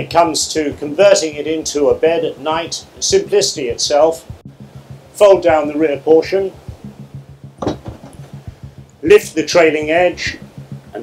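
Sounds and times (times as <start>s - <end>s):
low hum: 1.9s - 11.0s
padded seat back knocking: 7.6s - 8.3s.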